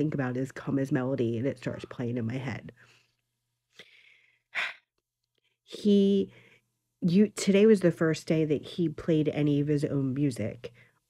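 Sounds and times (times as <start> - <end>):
woman breathing: 2.7 - 5.7, 6.3 - 6.8.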